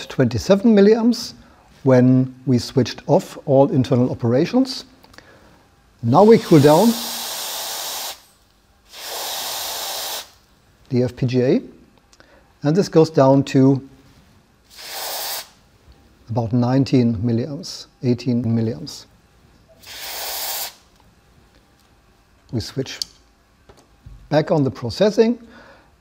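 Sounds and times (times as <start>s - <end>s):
aerosol spray hissing: 6.1s - 8.3s, 8.9s - 10.4s, 14.7s - 15.6s, 19.8s - 20.9s.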